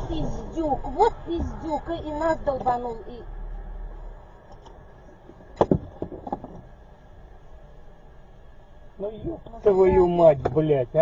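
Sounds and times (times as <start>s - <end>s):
car cabin hum: 0.0s - 11.0s.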